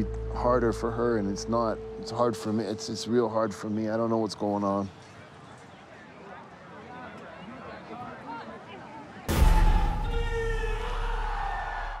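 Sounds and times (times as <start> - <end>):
low rumble: 0.0 - 3.2
ringing wavering chord of tones: 0.0 - 4.5.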